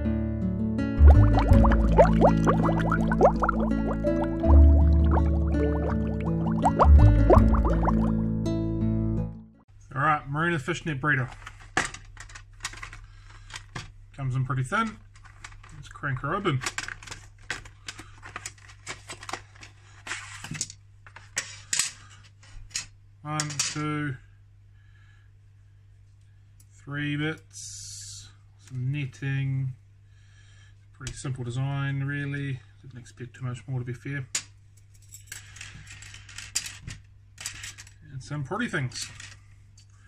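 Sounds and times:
rustling scrape: 18.2 - 20.6.

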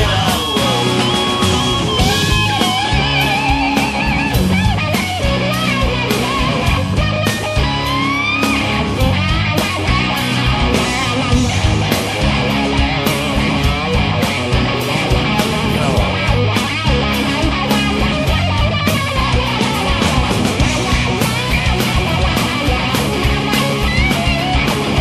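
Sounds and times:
rock band playing: 0.0 - 25.0.

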